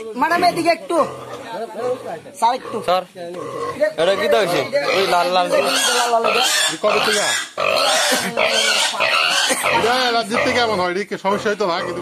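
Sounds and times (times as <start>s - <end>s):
piglet squealing: 3.6s - 10.8s.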